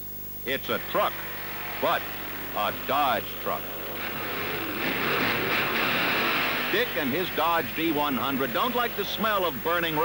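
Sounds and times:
car engines roaring: 0:00.6 - 0:10.0.

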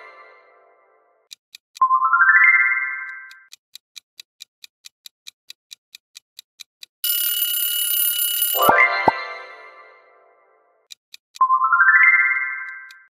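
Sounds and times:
clock ticking fast: 0:01.2 - 0:01.9, 0:03.2 - 0:07.9, 0:10.8 - 0:11.5
alarm clock bell ringing: 0:07.0 - 0:09.9
rising chime: 0:08.6 - 0:10.0.

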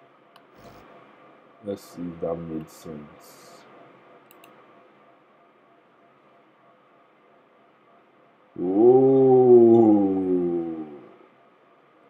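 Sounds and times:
man's drawn-out ohhh: 0:08.6 - 0:11.2.

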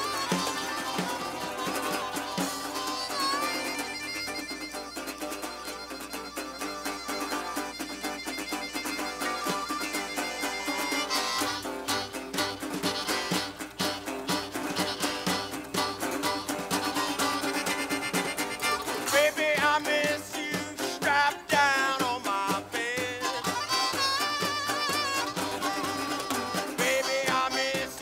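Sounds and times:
acoustic guitar: 0:00.0 - 0:28.0
fiddle: 0:00.0 - 0:28.0
harmonica: 0:00.0 - 0:28.0
upright bass: 0:08.8 - 0:28.0.

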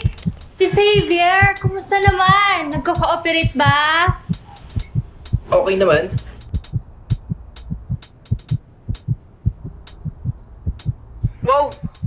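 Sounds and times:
faint low hum: 0:00.0 - 0:12.0
heartbeat thumps: 0:00.0 - 0:12.0.

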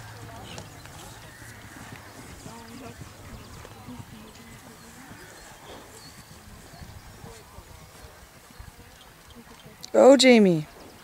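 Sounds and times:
horse hoofbeats galloping: 0:00.0 - 0:09.8
faint spectator chatter: 0:00.0 - 0:11.0.

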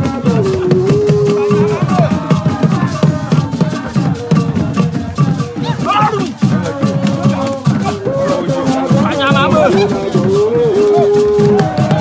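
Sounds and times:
rattles shaken: 0:00.0 - 0:12.0
voices singing: 0:00.0 - 0:12.0.

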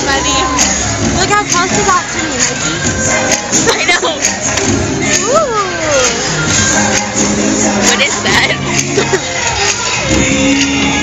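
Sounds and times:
parade music: 0:00.0 - 0:11.0
voices: 0:00.0 - 0:11.0.

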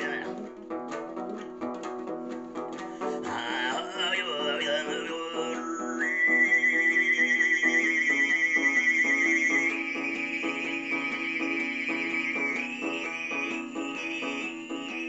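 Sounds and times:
strummed long-necked lute: 0:00.0 - 0:15.0
throat singing: 0:02.8 - 0:15.0.

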